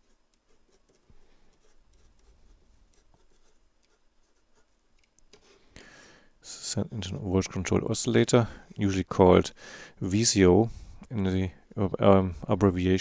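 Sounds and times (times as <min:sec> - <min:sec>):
pen scratching on paper: 0:00.0 - 0:04.8.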